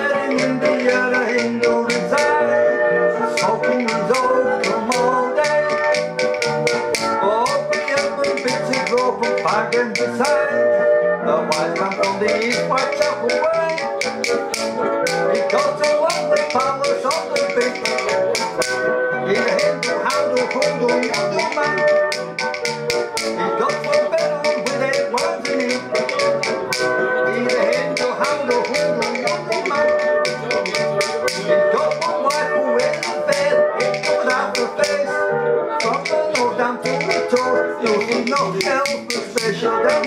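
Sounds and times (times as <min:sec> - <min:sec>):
man singing: 0:00.0 - 0:06.1, 0:07.2 - 0:14.1, 0:15.2 - 0:22.2, 0:23.4 - 0:40.0
banjolele strumming: 0:00.0 - 0:10.4, 0:11.5 - 0:40.0
clicking hand percussion: 0:00.0 - 0:10.5, 0:11.5 - 0:40.0.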